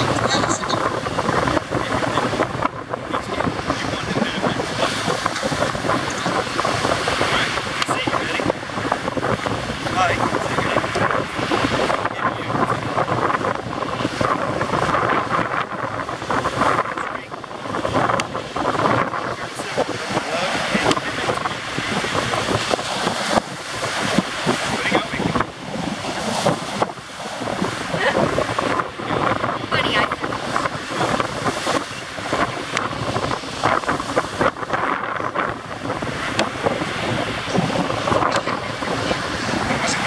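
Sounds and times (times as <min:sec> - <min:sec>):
breaking surf: 0:00.0 - 0:40.0
strong wind buffeting microphone: 0:00.0 - 0:40.0.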